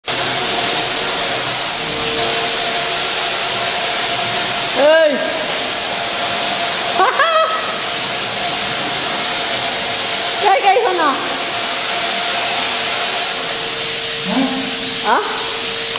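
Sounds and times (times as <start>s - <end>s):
paint sprayer hissing: 0.0s - 15.9s
short pitched calls: 14.2s - 15.4s.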